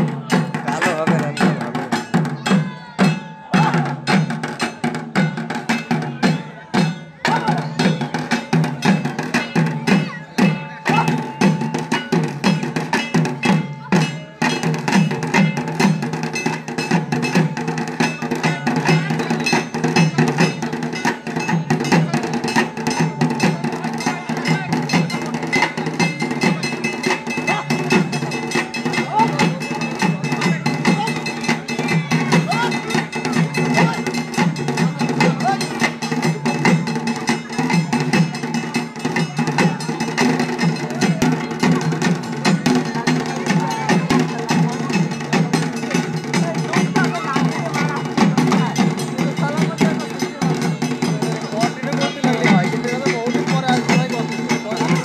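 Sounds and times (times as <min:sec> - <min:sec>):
clanking metal percussion: 0:00.0 - 0:55.0
crowd voices: 0:00.0 - 0:55.0
folk drums: 0:00.0 - 0:55.0.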